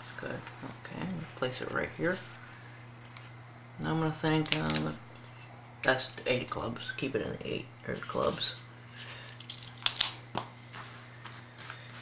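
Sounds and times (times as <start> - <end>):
marker plastic click: 4.4 - 5.0, 9.5 - 10.5
playing cards rustling on carpet: 9.2 - 12.0.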